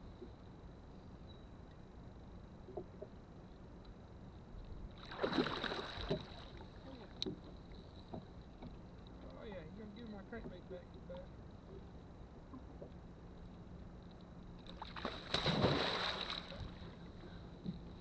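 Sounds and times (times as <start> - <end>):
fish splashing in water: 5.0 - 6.6, 14.8 - 16.8.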